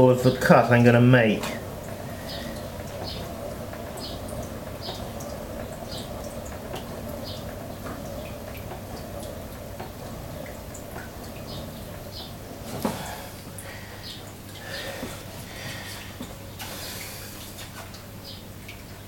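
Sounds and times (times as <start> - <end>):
potter's wheel motor hum: 0.0 - 19.0.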